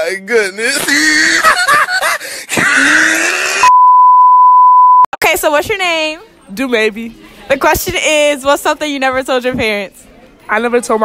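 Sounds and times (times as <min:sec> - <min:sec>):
steady test tone beep: 0:03.7 - 0:05.2.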